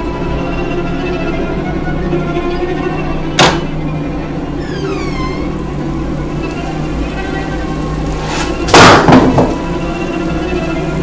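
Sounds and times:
low suspense drone: 0.0s - 11.0s
door creaking open: 3.3s - 3.9s, 4.5s - 9.7s
loud noisy hit: 8.2s - 9.7s.

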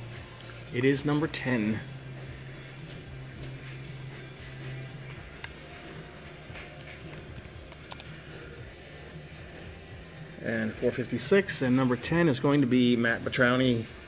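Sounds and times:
quiet background music: 0.0s - 14.0s
computer keyboard and mouse clicks: 6.6s - 8.2s.

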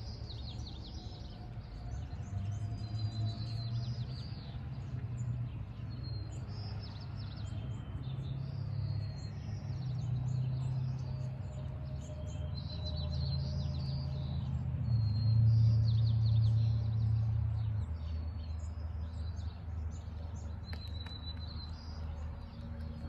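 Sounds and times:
small birds chirping: 15.0s - 23.0s.

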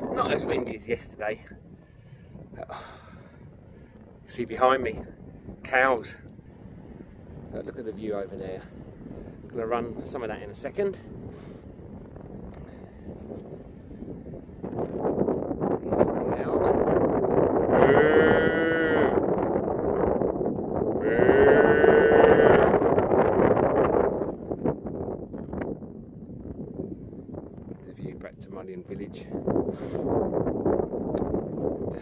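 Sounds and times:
wind buffeting microphone: 0.0s - 32.0s
long livestock calls: 17.8s - 19.2s, 21.0s - 22.8s.

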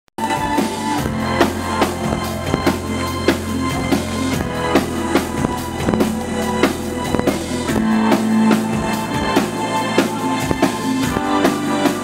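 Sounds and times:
drum-kit beat: 0.2s - 12.0s
synth-pop band playing live: 0.2s - 12.0s
sustained keyboard chords: 0.3s - 12.0s
deep bass note: 1.0s - 9.3s.

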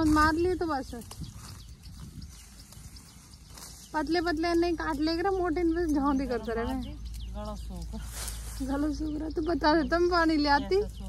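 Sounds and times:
sickle cutting stalks: 0.0s - 9.2s.

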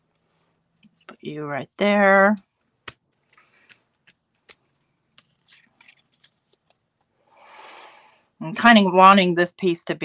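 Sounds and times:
paper rustle: 2.8s - 6.9s.

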